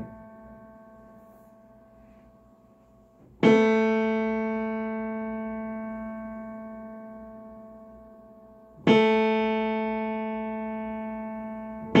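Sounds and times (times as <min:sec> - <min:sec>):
piano note ringing: 0:00.0 - 0:12.0.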